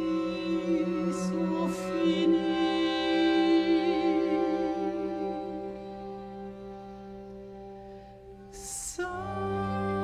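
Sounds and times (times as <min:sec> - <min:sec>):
string quartet sustained chord: 0:00.0 - 0:10.0.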